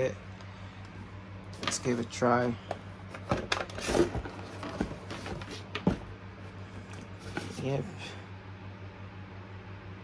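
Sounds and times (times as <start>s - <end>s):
cardboard packaging knocks and rustles: 3.2s - 6.1s.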